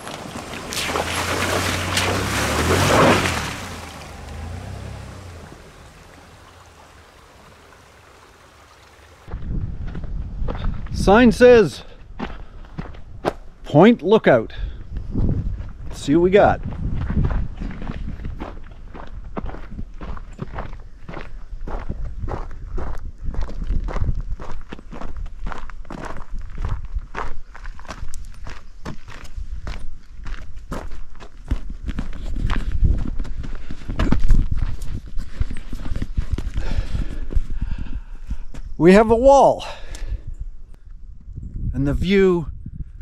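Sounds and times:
footsteps on dirt path: 0.0 - 5.5, 9.3 - 11.1, 11.8 - 13.7, 14.8 - 38.8.

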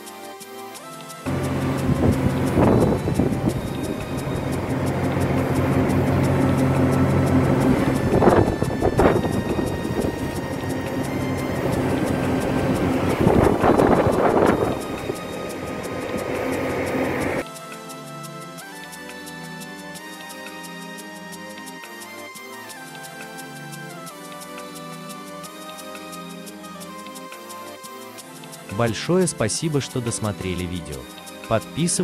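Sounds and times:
quiet background music: 0.0 - 32.0
wind: 1.2 - 17.5
low hum: 1.3 - 17.4
rushing water: 1.3 - 17.4.

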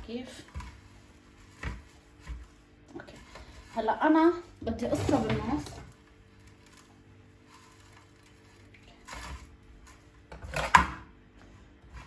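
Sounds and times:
dry dough rustling: 0.0 - 10.4.

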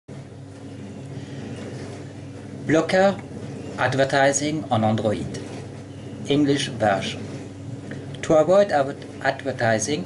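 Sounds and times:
low hum: 0.1 - 10.0.

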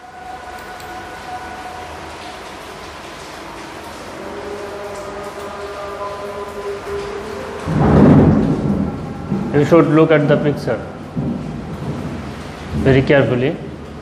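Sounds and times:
deep rumble: 7.6 - 14.0.

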